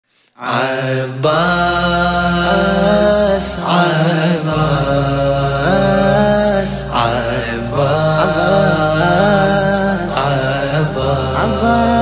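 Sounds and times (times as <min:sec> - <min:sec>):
wordless chanted vocals: 0:00.2 - 0:12.0
low steady drone: 0:01.4 - 0:12.0.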